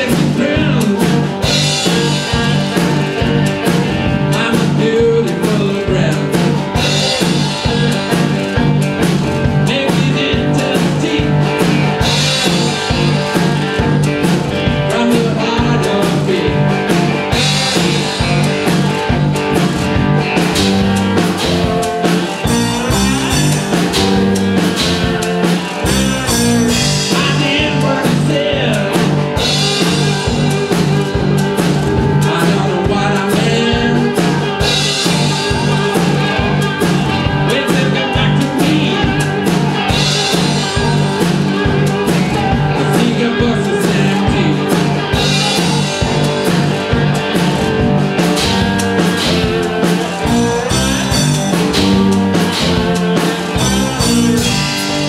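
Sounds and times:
amplified blues rock guitars: 0:00.0 - 0:55.0
steady drum beat: 0:00.0 - 0:55.0.

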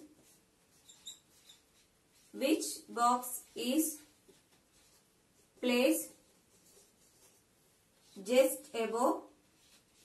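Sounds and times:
marker pen squeaking on whiteboard: 0:00.0 - 0:02.4.

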